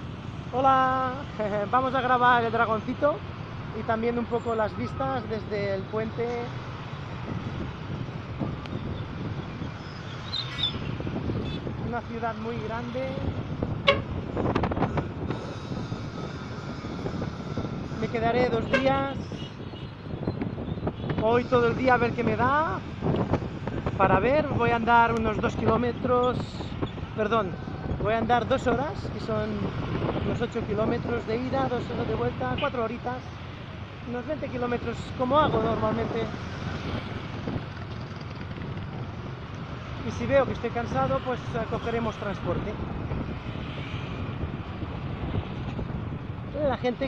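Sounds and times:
road traffic rumble: 0.0s - 47.0s
wind buffeting microphone: 6.8s - 33.0s, 34.9s - 47.0s.

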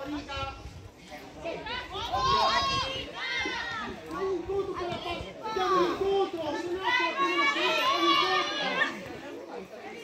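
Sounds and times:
women shouting and calling out: 1.4s - 9.2s.

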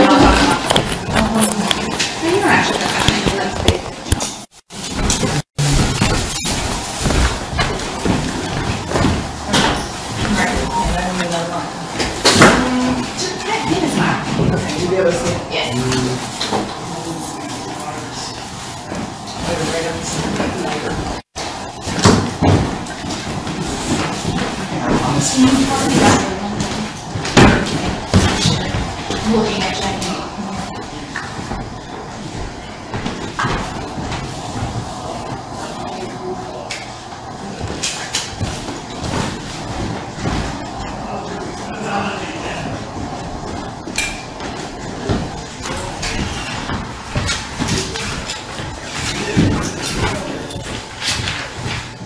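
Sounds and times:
busy room noise: 0.0s - 52.0s
knocks and thumps: 2.7s - 11.0s.

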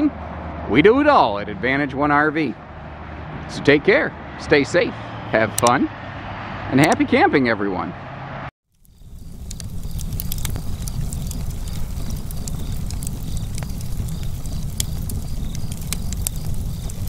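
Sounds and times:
wood fire crackling: 8.7s - 17.0s.

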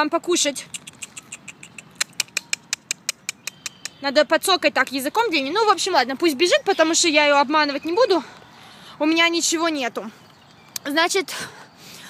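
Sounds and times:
person clicking tongue: 0.7s - 4.0s.

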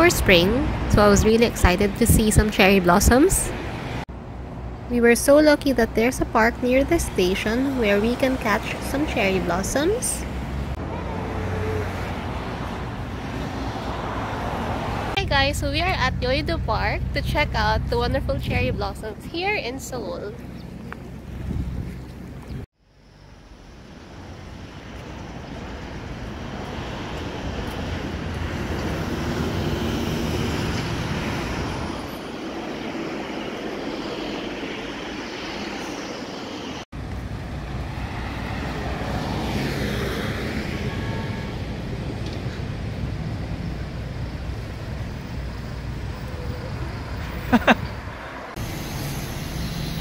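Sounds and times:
street traffic: 0.0s - 50.0s.

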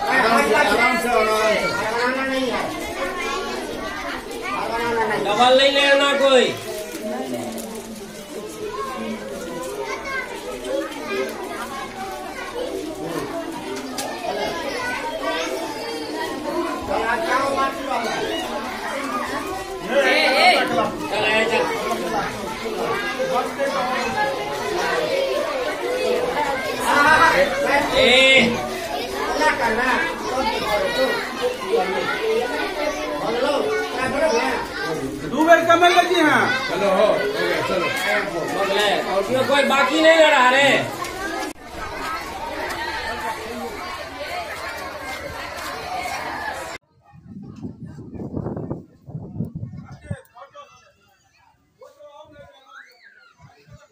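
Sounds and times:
high children's voices: 0.0s - 53.9s
schoolchildren chattering: 0.0s - 53.9s.

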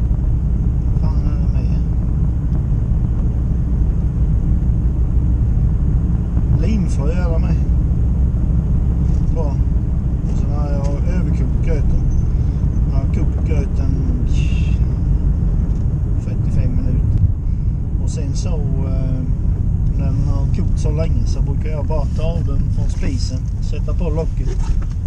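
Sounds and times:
car cabin engine and tyre rumble: 0.0s - 25.0s
man talking: 1.0s - 2.0s, 6.5s - 7.7s, 9.2s - 9.7s, 10.3s - 12.1s, 12.9s - 15.1s, 16.2s - 17.2s, 18.0s - 24.8s.

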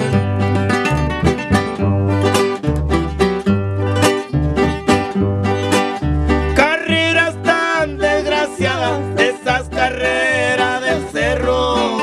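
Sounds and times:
plucked guitars: 0.0s - 12.0s.

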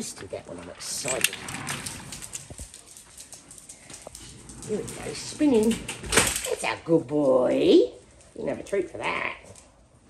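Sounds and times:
dog claws tapping on tiles: 1.7s - 6.6s.

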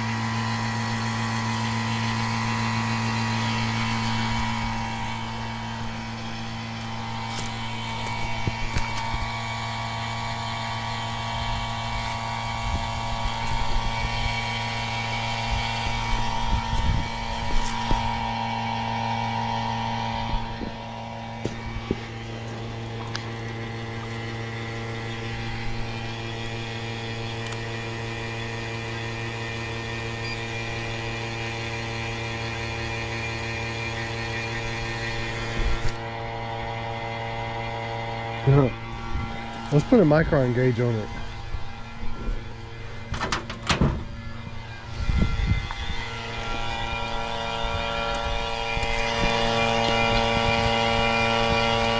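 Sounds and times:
vacuum pump humming: 0.0s - 51.9s.

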